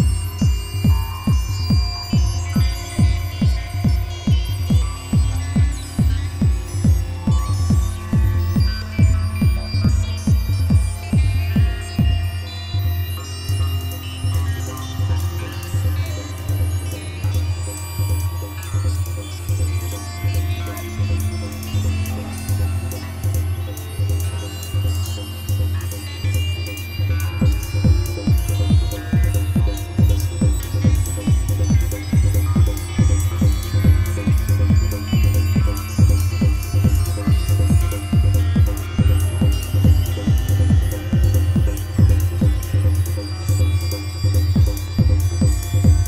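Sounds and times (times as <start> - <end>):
held synth tones: 0.0 - 46.0
hi-hat ticks: 0.0 - 46.0
low synth bass: 0.0 - 46.0
techno kick drum: 0.0 - 46.0.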